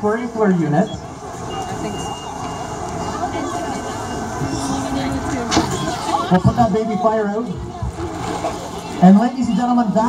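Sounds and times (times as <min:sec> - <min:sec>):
fire engine running: 0:00.0 - 0:10.0.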